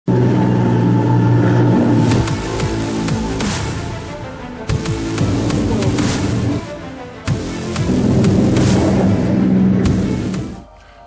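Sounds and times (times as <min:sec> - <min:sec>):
powerboat engines droning: 0:00.1 - 0:11.0
spray and wake hissing: 0:09.9 - 0:10.7.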